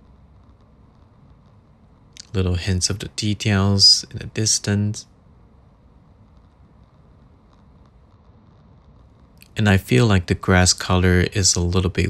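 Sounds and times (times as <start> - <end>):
low hiss and hum: 0.0 - 12.0.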